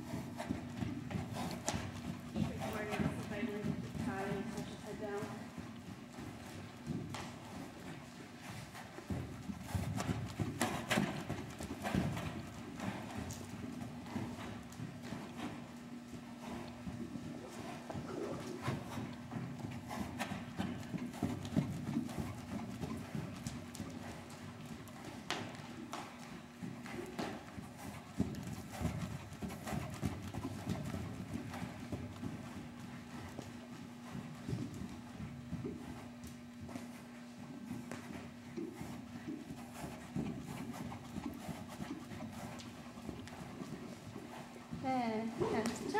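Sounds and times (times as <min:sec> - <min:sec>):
hoofbeats on sand: 0:00.0 - 0:45.9
steady low hum: 0:00.0 - 0:45.9.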